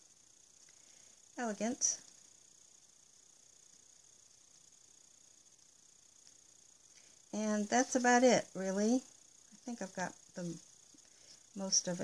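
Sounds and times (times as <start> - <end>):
light hiss: 0.0 - 12.0.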